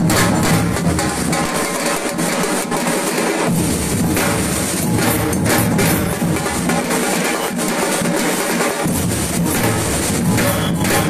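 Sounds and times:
marching drums playing: 0.0 - 11.0.

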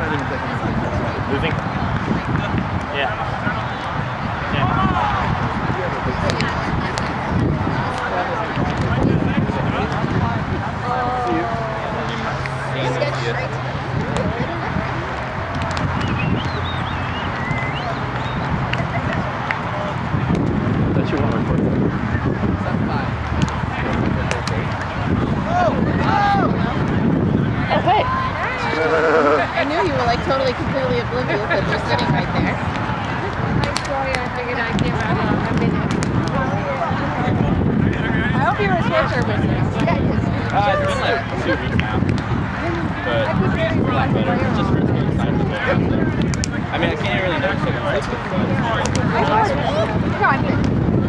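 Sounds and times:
faint distant voices: 0.0 - 51.0
outdoor background rush: 0.0 - 51.0
people talking and calling out: 0.0 - 51.0.

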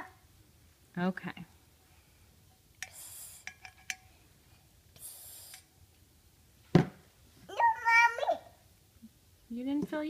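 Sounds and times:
short hisses: 2.9 - 3.5, 5.0 - 5.7.

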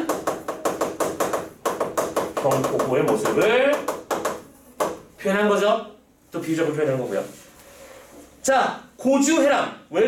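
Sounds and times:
chalk tapping on chalkboard: 0.0 - 5.1.

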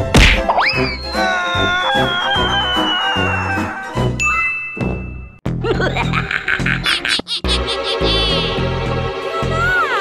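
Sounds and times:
background music: 0.0 - 10.0
bright ding ringing: 4.2 - 5.4.

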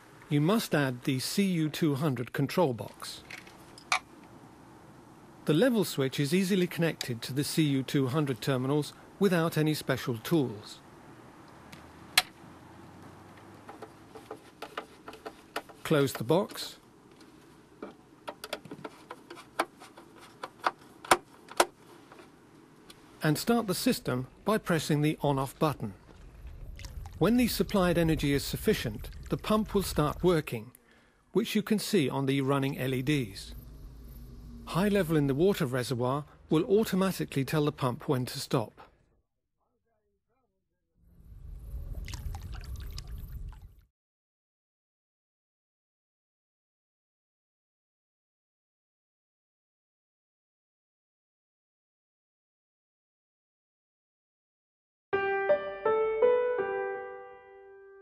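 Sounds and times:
low rumble: 26.0 - 30.5, 32.6 - 36.5, 41.1 - 43.8
water gurgling and splashing: 26.0 - 30.5, 41.4 - 43.9.

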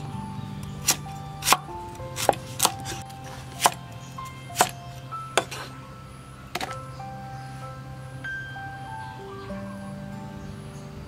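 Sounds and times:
cleaver chopping on wooden board: 0.7 - 3.9, 4.5 - 5.7.

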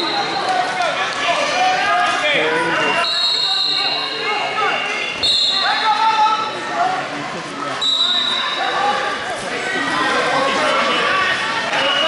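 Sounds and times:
overlapping voices in echoing hall: 0.0 - 12.0.

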